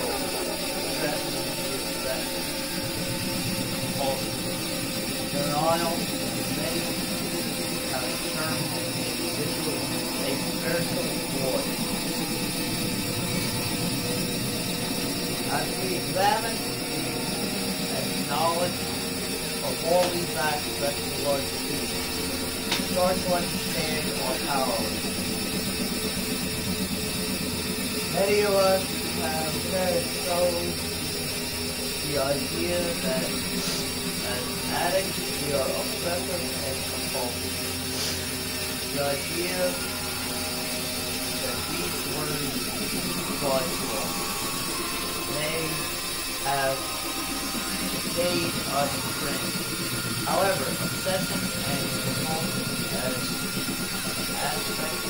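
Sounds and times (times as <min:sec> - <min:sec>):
low hum: 0:00.0 - 0:55.0
noisy electronic drone: 0:00.0 - 0:55.0
thin high held tone: 0:00.0 - 0:55.0.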